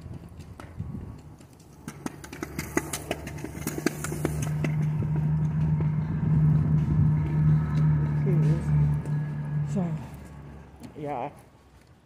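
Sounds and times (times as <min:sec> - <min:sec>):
vehicle engine hum: 0:00.0 - 0:12.0.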